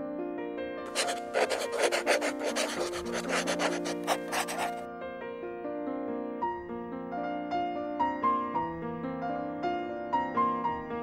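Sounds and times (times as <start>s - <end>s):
pen scratching on paper: 0.9s - 4.8s
soft piano music: 4.9s - 11.0s.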